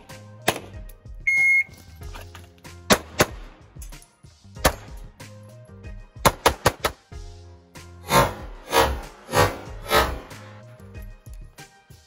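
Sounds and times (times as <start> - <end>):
background music: 0.0 - 12.0
shot timer beep: 1.3 - 1.7
pistol shots: 2.9 - 3.6, 6.2 - 7.0.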